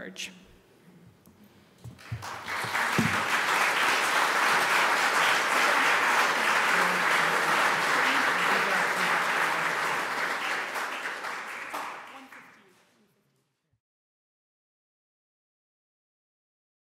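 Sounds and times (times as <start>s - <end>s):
audience applauding: 1.9s - 12.8s.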